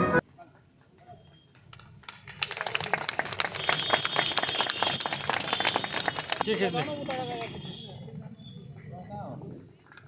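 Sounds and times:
crowd clapping: 0:00.2 - 0:09.1.

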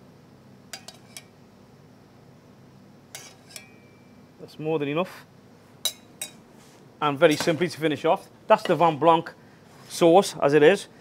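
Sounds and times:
metal spoon clinking on pots: 0:00.7 - 0:01.3, 0:03.1 - 0:04.1, 0:05.8 - 0:06.4.

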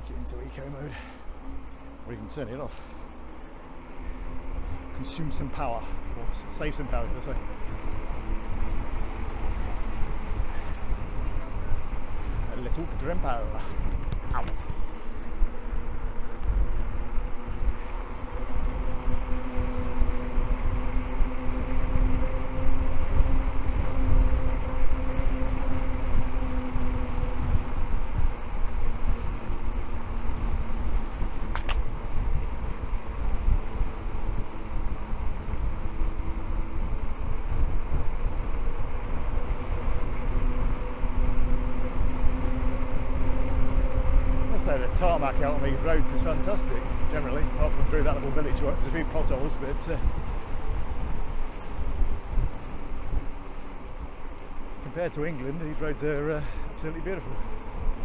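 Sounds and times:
low hum of moving bike: 0:00.0 - 0:58.0
wind buffeting microphone: 0:00.0 - 0:58.0
sharp click: 0:31.5 - 0:31.8.

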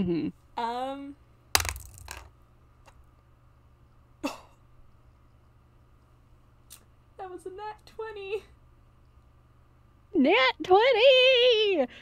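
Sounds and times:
person clearing throat: 0:04.2 - 0:04.6.

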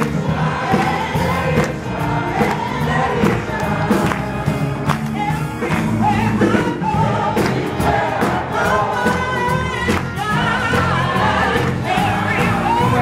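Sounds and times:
choir singing gospel: 0:00.0 - 0:13.0
keyboard accompaniment: 0:00.0 - 0:13.0
hand clapping: 0:03.2 - 0:06.0.

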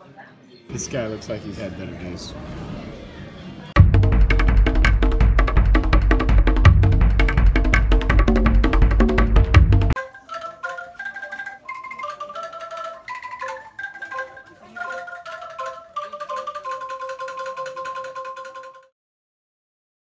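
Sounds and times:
angklung melody: 0:03.8 - 0:18.9.

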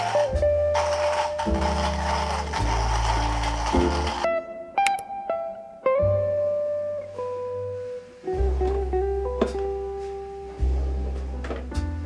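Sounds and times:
hand coffee grinder grinding: 0:00.0 - 0:04.3
background music with bass: 0:00.0 - 0:12.0.

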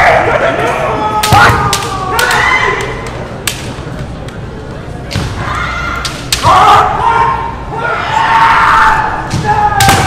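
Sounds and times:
fencers shouting: 0:00.0 - 0:03.0, 0:05.4 - 0:10.0
bamboo swords clacking: 0:01.2 - 0:04.4, 0:06.0 - 0:06.7.

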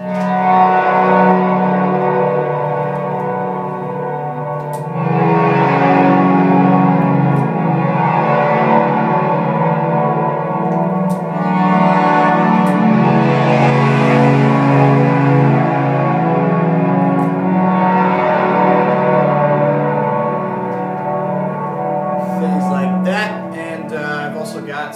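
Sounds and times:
ambient synthesizer chords: 0:00.0 - 0:24.9.

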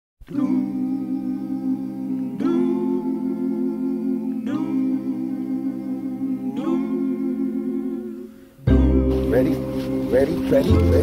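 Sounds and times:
humming chord of steady tones: 0:00.3 - 0:11.0.

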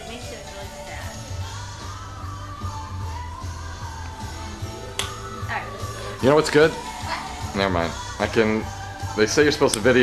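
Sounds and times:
music with pulsing bass: 0:00.0 - 0:10.0.

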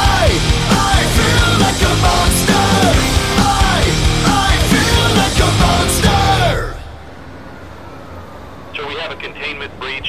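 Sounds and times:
man's voice over radio: 0:08.7 - 0:10.0.

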